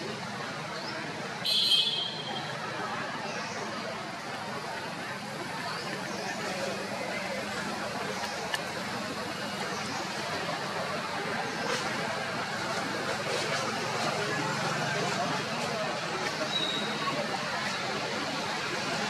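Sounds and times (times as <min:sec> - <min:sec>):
distant voices: 0:00.0 - 0:19.0.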